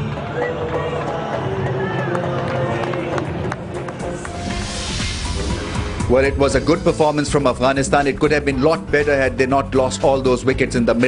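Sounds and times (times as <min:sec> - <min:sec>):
stadium crowd noise: 0:00.0 - 0:04.3
background music with held notes: 0:00.0 - 0:11.0.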